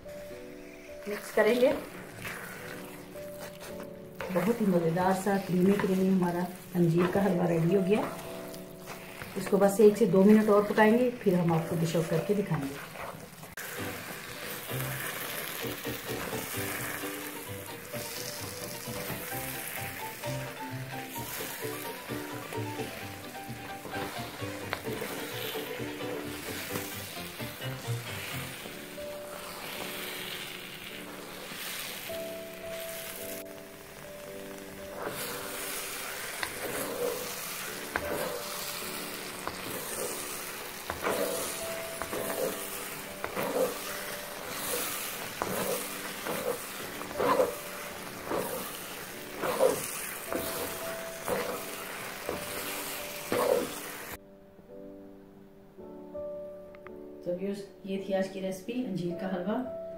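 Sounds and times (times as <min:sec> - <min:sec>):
spatula scraping a wok: 0:00.0 - 0:33.4, 0:34.0 - 0:54.2
food sizzling in a wok: 0:00.0 - 0:54.2
background music: 0:00.0 - 0:59.9.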